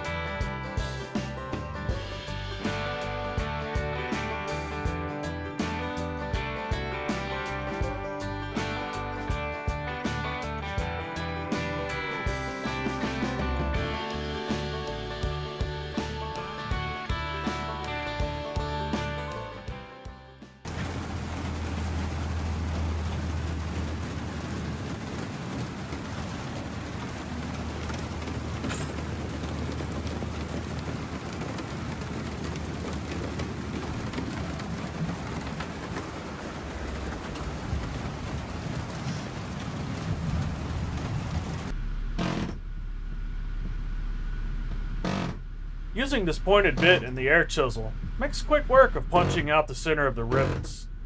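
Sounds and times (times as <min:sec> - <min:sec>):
low hum: 0:20.7 - 0:51.0.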